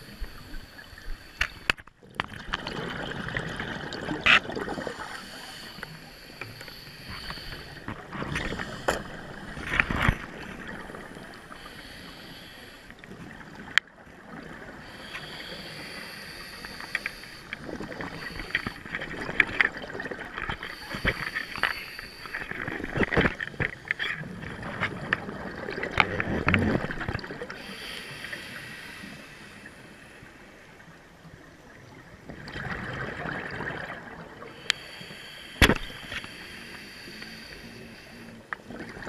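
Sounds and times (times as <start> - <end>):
exhaled bubbles underwater: 2.0 - 5.8, 17.6 - 21.3, 22.3 - 27.6, 31.6 - 34.6, 38.6 - 39.0.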